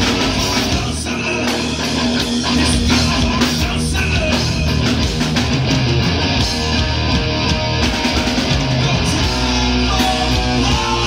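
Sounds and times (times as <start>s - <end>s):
loud rock band playing: 0.0s - 11.0s.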